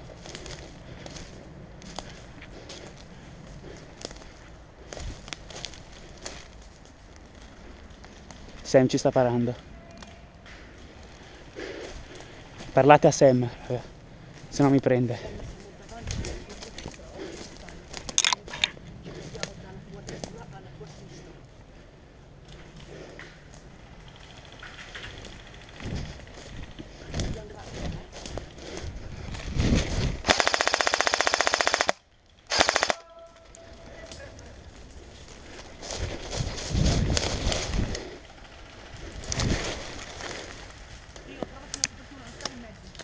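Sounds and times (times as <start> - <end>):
airsoft rifle firing bursts: 30.2 - 33.0.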